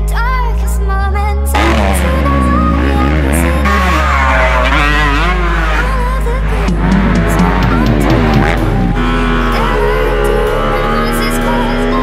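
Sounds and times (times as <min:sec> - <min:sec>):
hip-hop music with bass beat: 0:00.0 - 0:12.0
dirt bike engine revving: 0:01.5 - 0:12.0.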